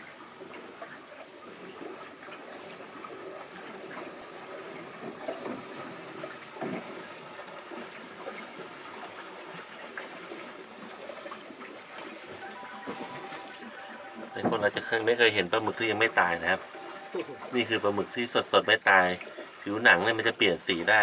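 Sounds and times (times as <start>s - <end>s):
high-pitched buzz: 12.4s - 18.3s.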